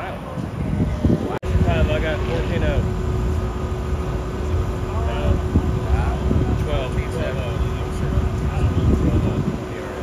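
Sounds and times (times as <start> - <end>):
engines idling: 0.0 - 10.0
steady hum: 0.0 - 10.0
voices talking: 0.0 - 10.0.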